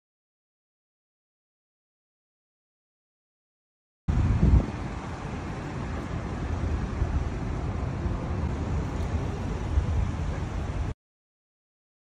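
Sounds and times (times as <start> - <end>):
car traffic rumble: 4.1 - 11.0.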